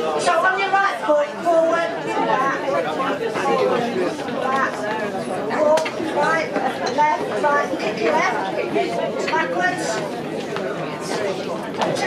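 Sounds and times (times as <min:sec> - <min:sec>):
crowd chattering in a hall: 0:00.0 - 0:12.0.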